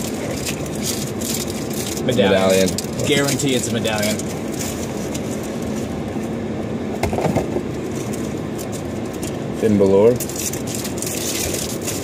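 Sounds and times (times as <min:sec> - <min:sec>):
foil wrapper crinkling: 0:00.0 - 0:06.3, 0:07.6 - 0:12.0
low hum inside a car: 0:00.0 - 0:12.0
cards shuffled by hand: 0:10.2 - 0:12.0.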